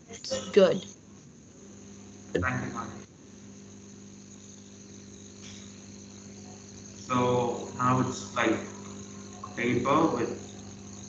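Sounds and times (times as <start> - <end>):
high-pitched whine: 2.4 - 3.1, 4.4 - 11.0.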